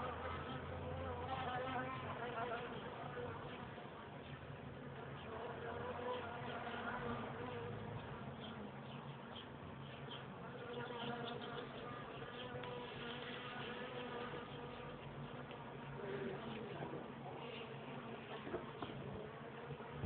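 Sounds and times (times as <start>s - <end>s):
bees buzzing: 4.9s - 20.0s.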